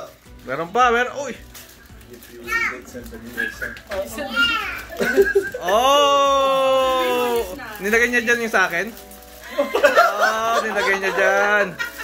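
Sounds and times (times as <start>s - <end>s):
child's high voice: 4.3s - 4.9s
excited voices: 5.0s - 7.6s.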